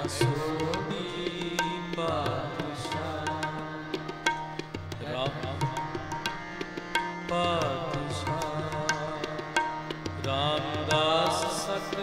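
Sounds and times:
man singing: 0.0 - 4.1, 4.9 - 6.2, 7.2 - 12.0
harmonium: 0.0 - 12.0
tabla: 0.0 - 12.0.

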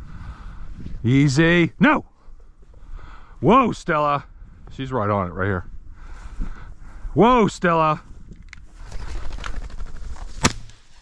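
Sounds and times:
shotgun shot: 10.3 - 10.8.

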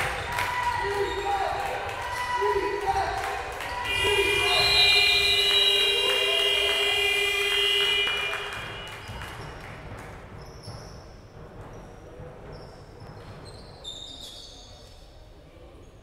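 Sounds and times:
shoe squeaks: 10.4 - 15.2.

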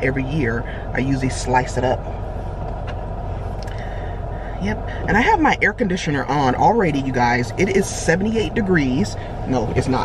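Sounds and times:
air conditioner blowing: 0.0 - 10.0
car engine humming: 0.0 - 10.0.

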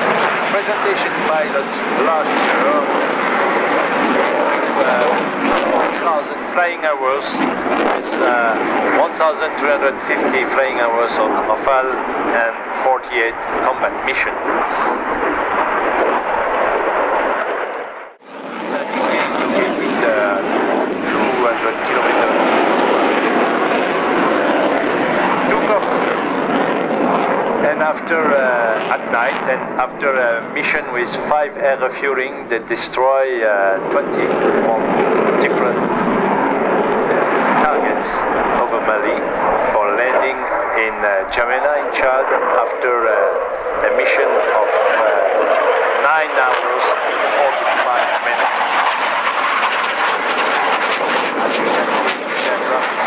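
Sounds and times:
fighter jet flying past: 0.0 - 53.0
faint commentator voice: 0.5 - 3.0, 4.3 - 15.0, 18.7 - 23.5, 37.5 - 48.9, 52.4 - 53.0.

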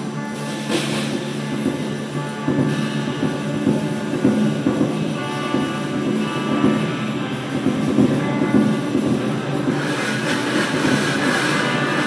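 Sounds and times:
dense steady drone: 0.0 - 12.0
drum kit rolling clatter: 0.0 - 12.0.

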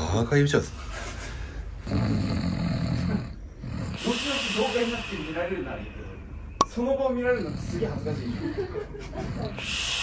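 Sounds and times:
man snoring: 1.8 - 5.4
hissing breath: 3.6 - 6.5, 9.4 - 10.0.

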